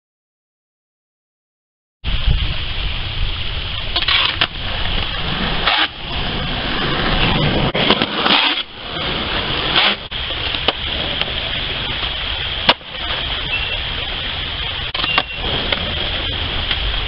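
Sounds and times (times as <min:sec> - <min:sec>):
skateboard wheels rolling on concrete: 0:02.0 - 0:17.0
wind buffeting microphone: 0:02.0 - 0:17.0
skateboard clacks: 0:04.0 - 0:13.2, 0:15.0 - 0:17.0.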